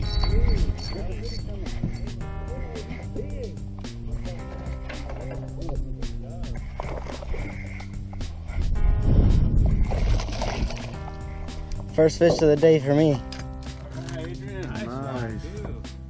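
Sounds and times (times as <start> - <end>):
background music with chords: 0.0 - 16.0.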